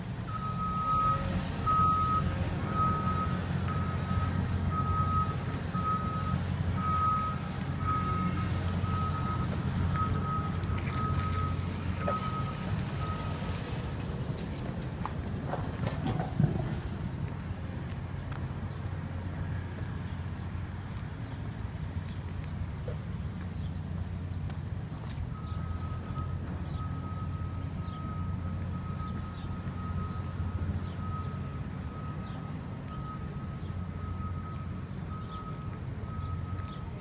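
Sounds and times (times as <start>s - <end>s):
low engine rumble: 0.0s - 37.0s
reversing alarm beeping: 0.2s - 13.8s, 25.3s - 37.0s.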